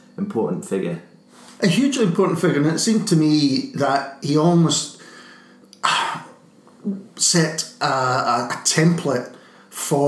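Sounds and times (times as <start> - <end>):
person coughing: 5.8 - 6.4.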